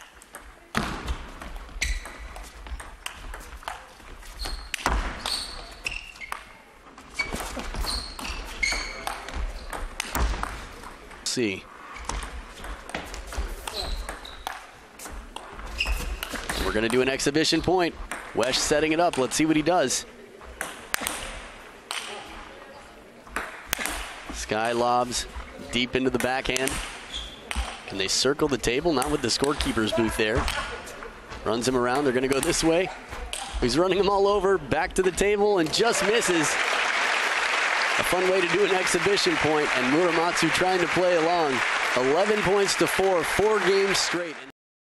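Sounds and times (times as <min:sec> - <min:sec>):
shoes squeaking on floor: 0:01.0 - 0:11.0, 0:11.8 - 0:16.9, 0:25.1 - 0:28.0.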